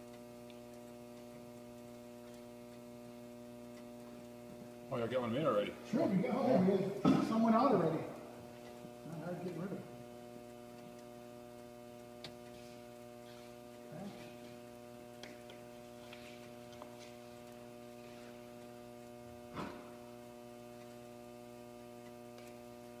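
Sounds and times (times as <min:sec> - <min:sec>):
electrical mains hum: 0:00.0 - 0:23.0.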